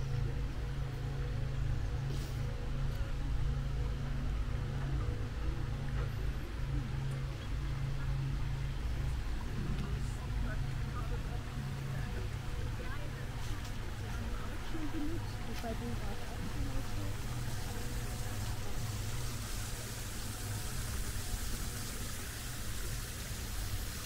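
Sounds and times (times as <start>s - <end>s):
faint distant voices: 0.0s - 24.0s
steady low rumble: 0.0s - 24.0s
faint hiss: 11.7s - 24.0s.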